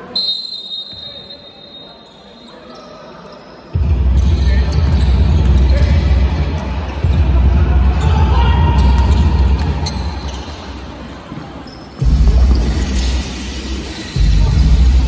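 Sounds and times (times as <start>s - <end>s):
referee's whistle blast: 0.0s - 2.0s.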